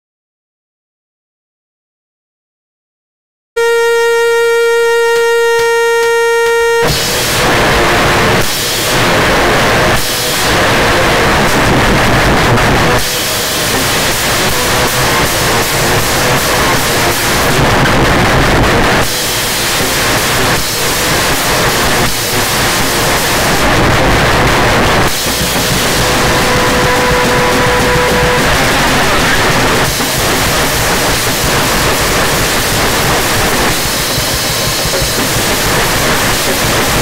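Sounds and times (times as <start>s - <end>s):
distorted heavy rock music: 3.6s - 37.0s
steady pitched tone: 3.6s - 37.0s.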